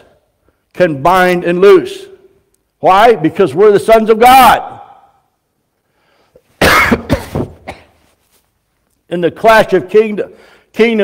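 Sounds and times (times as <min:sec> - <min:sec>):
man coughing: 0:06.6 - 0:08.0.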